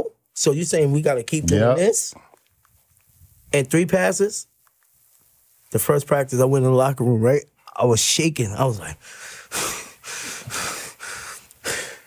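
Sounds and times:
man panting heavily: 9.0 - 12.0.

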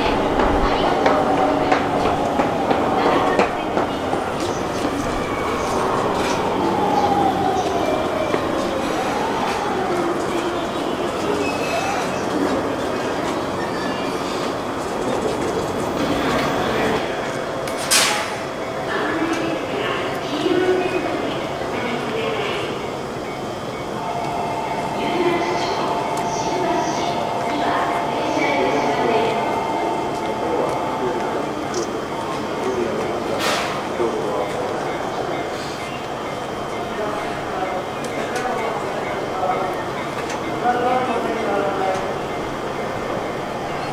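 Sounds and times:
train equipment running steadily: 0.0 - 43.9
voices: 0.0 - 43.9
electric train standing noise: 22.2 - 43.9.

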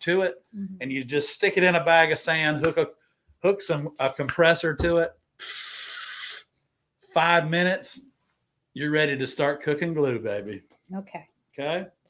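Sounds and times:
man making a hissing sound: 5.4 - 6.5.

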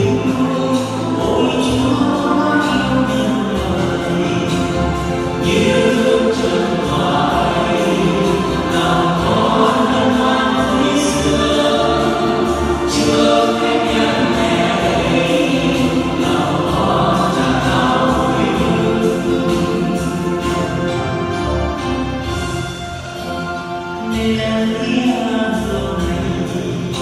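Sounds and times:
choir singing: 0.0 - 22.5.

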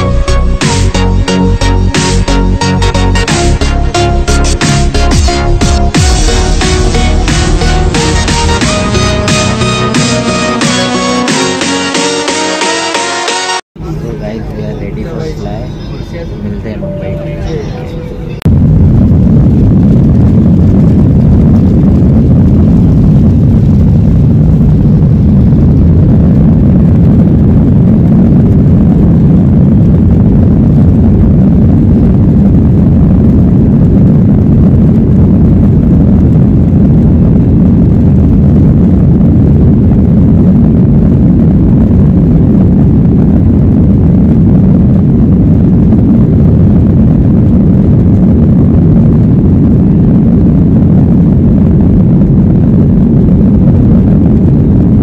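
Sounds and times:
jet engine rumble in cabin: 13.8 - 55.0.

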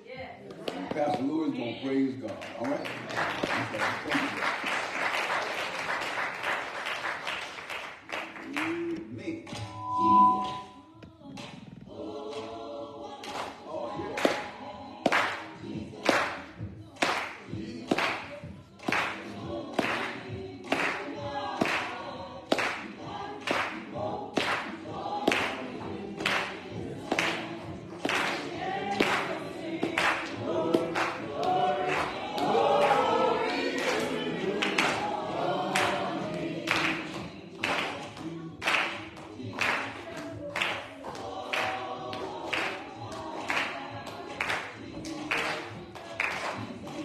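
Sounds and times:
hand claps: 0.5 - 1.3, 2.2 - 9.8, 13.2 - 35.1, 35.7 - 47.0
congregation singing a hymn: 9.7 - 47.0.

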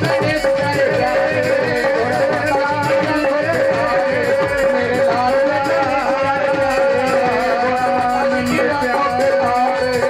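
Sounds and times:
fast hand drumming: 0.0 - 10.0
man singing wavering melody: 0.0 - 10.0.

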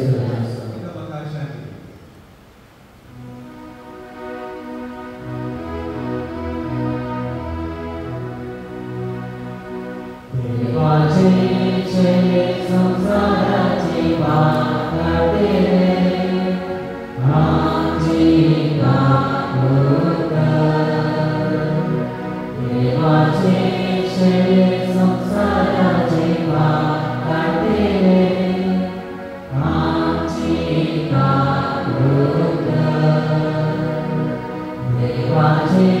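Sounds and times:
church choir singing a hymn: 3.8 - 36.0.

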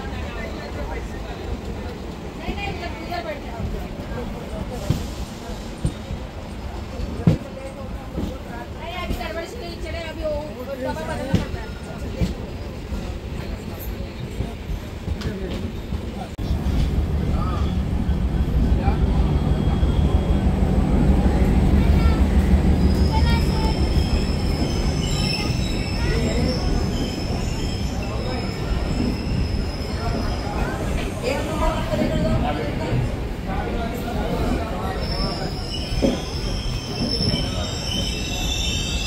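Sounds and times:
train wheels rumbling: 0.1 - 39.0.

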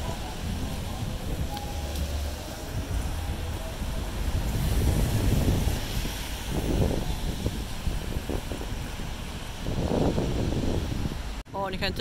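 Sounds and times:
distant traffic: 0.0 - 12.0
wind buffeting microphone: 0.0 - 12.0.

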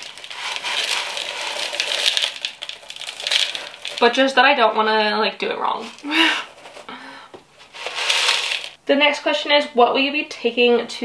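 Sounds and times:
granules poured into ceramic pot: 0.0 - 4.5, 5.8 - 6.1, 7.7 - 8.8.

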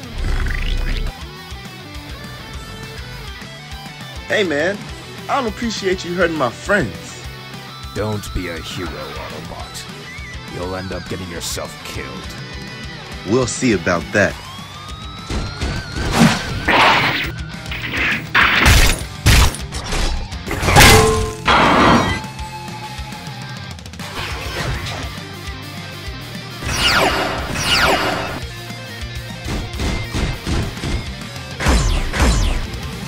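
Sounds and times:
action film music: 0.0 - 33.0
fight hits and crashes: 17.9 - 22.2.

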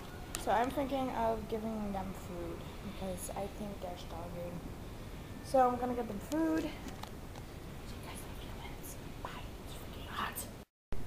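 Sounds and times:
person whispering: 7.9 - 10.6.

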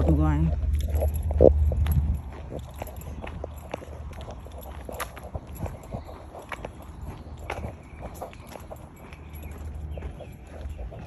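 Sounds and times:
footsteps on concrete: 0.0 - 11.0
steady low rumble: 0.0 - 11.0.

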